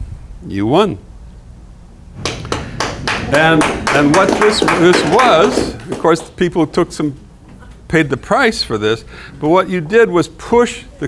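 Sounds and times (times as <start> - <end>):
room hum: 0.0 - 11.0
audience clapping: 2.2 - 6.9.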